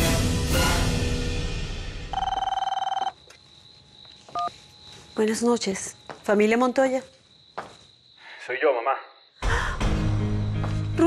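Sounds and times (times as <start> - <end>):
telephone ringing: 2.1 - 3.2.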